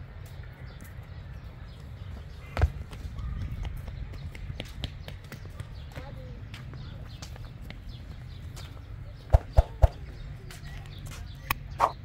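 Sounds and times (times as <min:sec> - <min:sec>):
footsteps on pavement and grass: 0:00.0 - 0:12.0.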